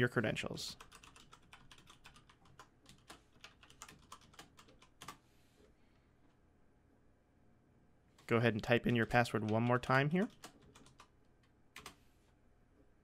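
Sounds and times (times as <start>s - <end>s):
typing on keyboard: 0.8s - 5.2s, 9.0s - 12.0s.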